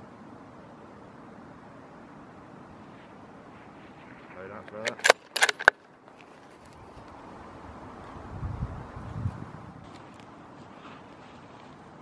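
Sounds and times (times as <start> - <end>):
rifle bolt clicks: 4.7 - 5.8.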